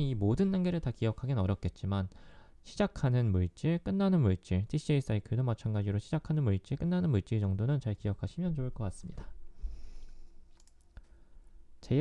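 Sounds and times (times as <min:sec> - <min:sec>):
faint clicks: 0:10.0 - 0:11.1.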